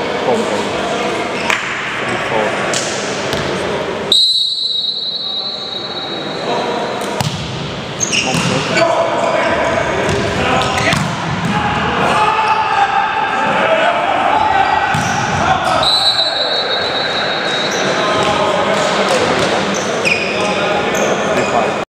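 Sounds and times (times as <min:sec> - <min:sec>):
volleyball hits: 0:07.0 - 0:08.6, 0:14.8 - 0:15.8
players shouting: 0:08.0 - 0:19.4.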